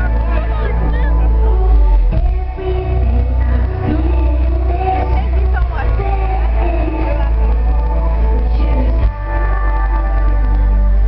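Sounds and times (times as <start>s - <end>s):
deep steady bass: 0.0s - 11.0s
woman singing: 1.5s - 11.0s.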